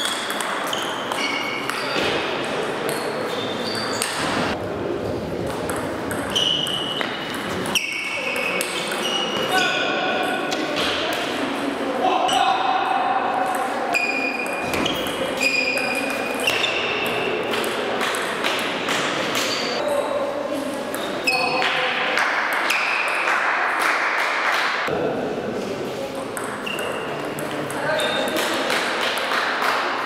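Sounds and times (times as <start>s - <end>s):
table tennis ball pings: 0.0s - 2.1s
background voices chattering: 0.0s - 23.7s, 24.7s - 30.0s.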